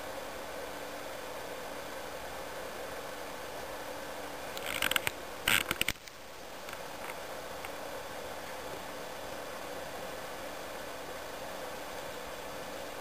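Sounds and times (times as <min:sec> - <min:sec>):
low background hiss and hum: 0:00.0 - 0:13.0
clicks and scraping rustles: 0:04.5 - 0:07.2.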